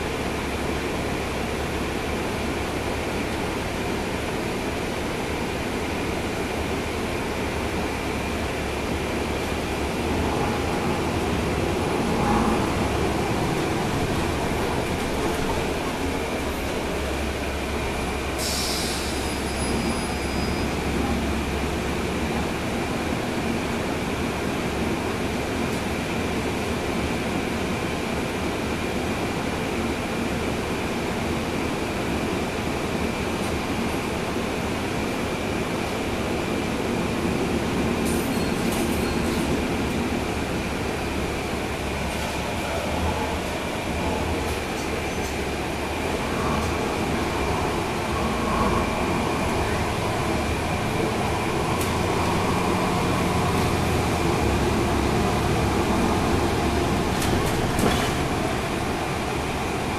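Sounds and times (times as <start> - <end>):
bus diesel engine running: 0.0 - 59.9
road and tyre noise: 0.0 - 59.9
short air hiss: 18.4 - 19.4.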